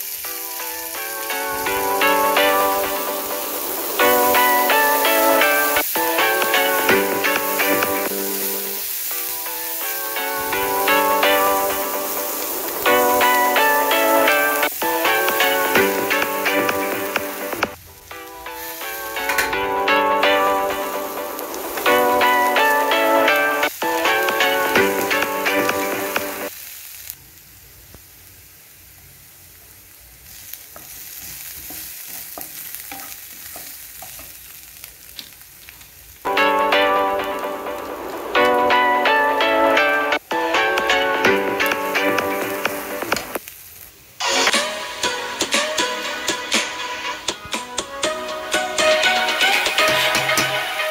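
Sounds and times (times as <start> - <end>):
onions sizzling in a frying pan: 0.0 - 45.2
background music: 0.1 - 26.5, 36.3 - 43.4, 44.2 - 50.9
spatula stirring in a pan: 30.3 - 35.4.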